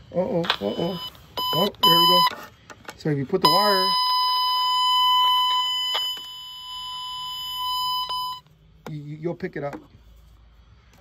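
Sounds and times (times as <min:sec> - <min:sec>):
high-pitched tone from probe: 0:00.6 - 0:02.3, 0:03.4 - 0:08.5.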